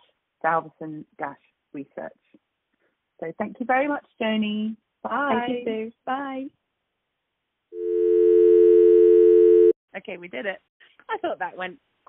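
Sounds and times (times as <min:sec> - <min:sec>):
telephone dial tone: 0:07.8 - 0:09.8.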